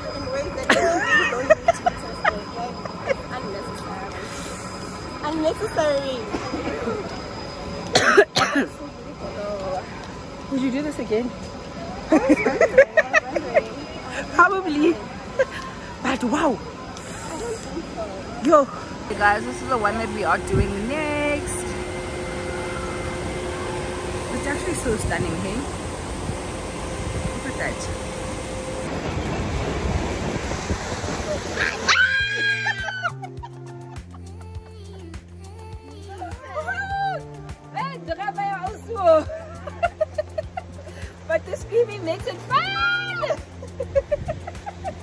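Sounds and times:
faint machine hum: 0.0s - 45.0s
water rushing: 28.8s - 33.2s
woman squealing: 31.6s - 33.3s, 36.2s - 37.2s, 42.5s - 43.4s
soft laughter: 32.4s - 35.0s.

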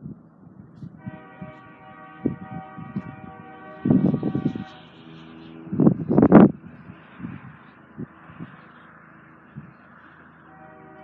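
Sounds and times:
distant locomotive air horn: 0.9s - 7.2s, 10.2s - 11.0s.

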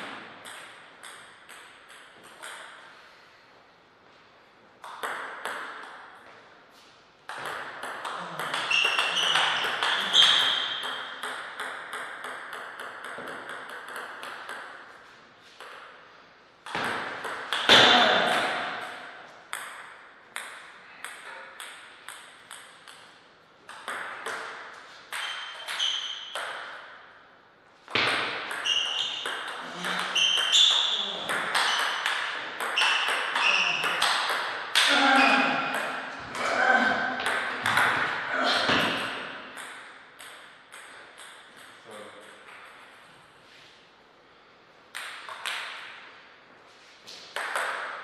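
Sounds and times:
table tennis ball clicking: 7.3s - 14.8s
short high squeaks: 8.6s - 10.8s, 28.6s - 32.0s, 32.8s - 34.0s.

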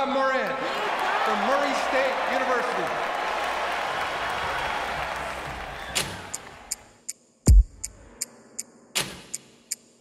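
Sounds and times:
sharp ticking: 6.7s - 10.0s.

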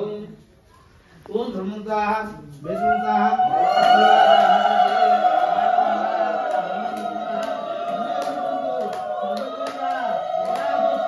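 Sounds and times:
group chanting: 2.8s - 11.0s
hand claps: 6.5s - 11.0s.

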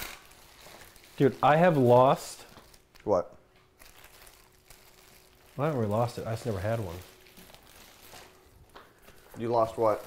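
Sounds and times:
faint soft handling sounds: 0.4s - 10.0s.

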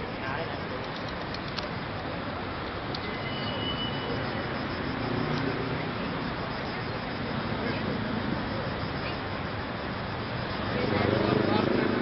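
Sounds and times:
city road traffic: 0.0s - 12.0s.

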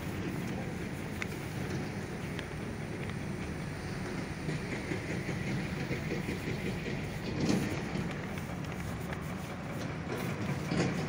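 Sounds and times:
hiss: 0.0s - 11.0s
low outdoor rumble: 0.0s - 11.0s.

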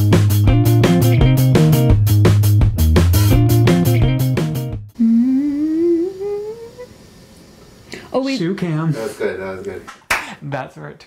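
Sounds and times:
plucked guitar music with beat: 0.0s - 4.9s
person humming rising note: 5.0s - 7.0s.

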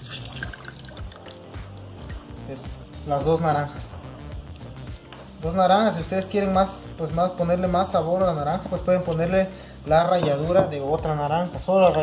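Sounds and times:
juice dripping into plastic glass: 0.0s - 1.6s
background music with low bass: 0.0s - 12.0s.

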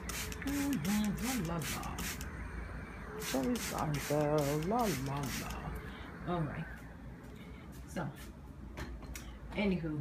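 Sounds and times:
spray bottle spraying: 0.0s - 2.3s, 3.2s - 5.6s.

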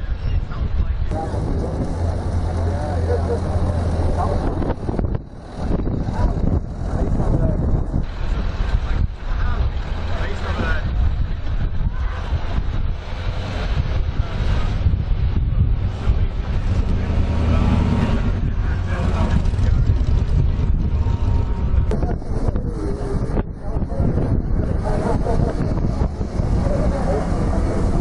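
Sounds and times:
people talking: 0.0s - 28.0s
vehicle engine running: 0.0s - 28.0s
wind buffeting microphone: 0.0s - 28.0s.

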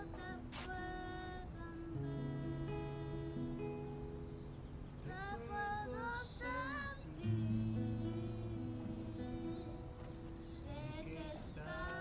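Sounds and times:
boy singing: 0.0s - 4.1s, 5.0s - 12.0s
acoustic guitar: 0.0s - 12.0s.

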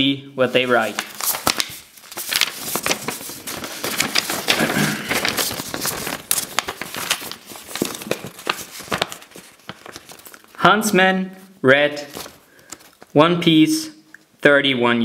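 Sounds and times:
paper rustling and crinkling: 0.5s - 10.6s, 12.0s - 13.2s.

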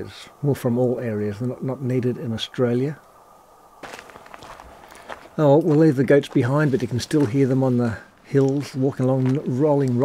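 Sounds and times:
footsteps crunching on gravel: 3.8s - 10.0s.

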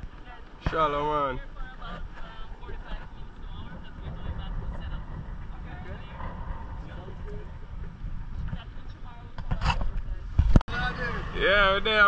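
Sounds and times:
wind and boat rumble: 0.0s - 12.0s
people chatting: 0.2s - 7.5s, 8.4s - 12.0s.

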